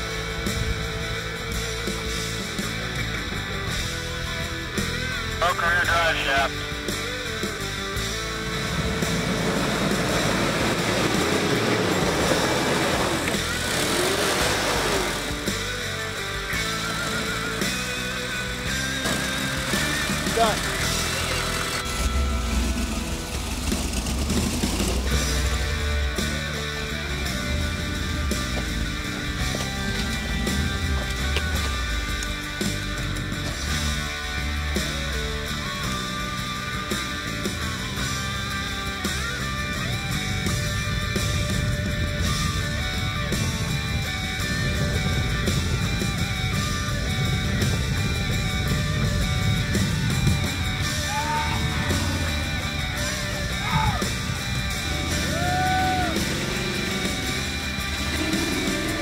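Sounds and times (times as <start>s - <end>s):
guitar rock music: 0.0s - 59.0s
heavy low rumble: 0.0s - 59.0s
truck engines revving: 0.0s - 59.0s
voices: 4.8s - 23.7s, 25.0s - 59.0s.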